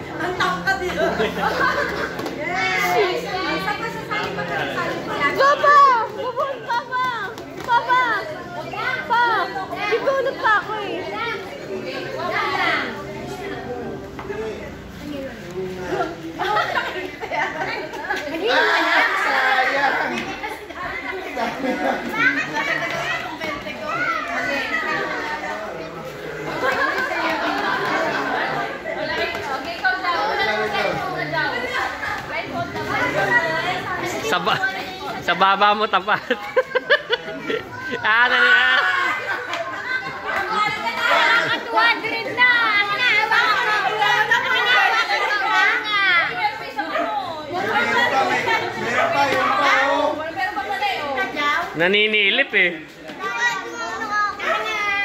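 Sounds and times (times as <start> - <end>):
children shouting and chattering: 0.0 - 55.0.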